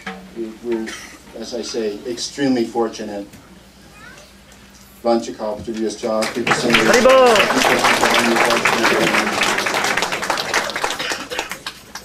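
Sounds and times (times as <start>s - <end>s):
voices: 5.4s - 11.5s
audience applauding: 6.2s - 12.0s.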